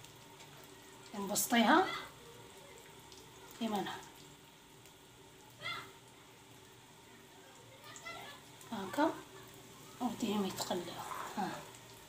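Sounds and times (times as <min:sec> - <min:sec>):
food sizzling in hot oil: 0:00.0 - 0:12.0.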